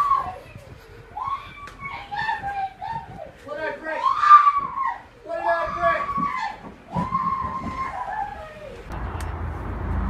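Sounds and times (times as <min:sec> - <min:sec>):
low outdoor rumble: 0:07.5 - 0:10.0.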